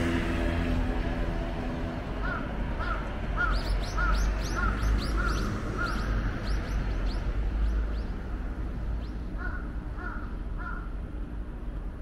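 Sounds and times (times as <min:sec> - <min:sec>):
low background rumble: 0:00.0 - 0:12.0
crow cawing: 0:02.2 - 0:06.3, 0:09.4 - 0:10.9.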